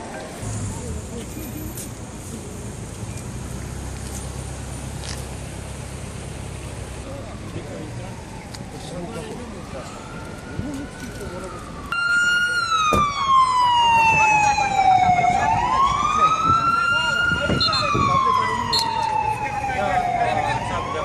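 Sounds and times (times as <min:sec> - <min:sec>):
emergency siren wailing: 0:07.0 - 0:21.0.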